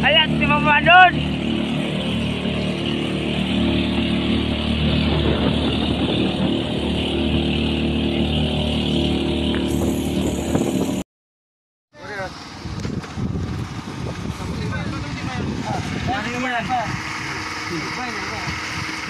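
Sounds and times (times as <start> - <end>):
boat engine running: 0.0 - 11.0, 12.0 - 19.0.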